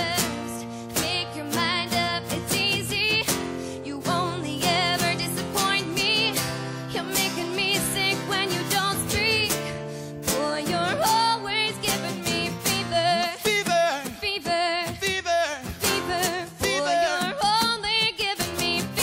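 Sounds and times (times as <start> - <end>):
woman singing with vibrato: 0.0 - 15.1, 15.7 - 19.0
strummed acoustic guitar: 0.0 - 19.0.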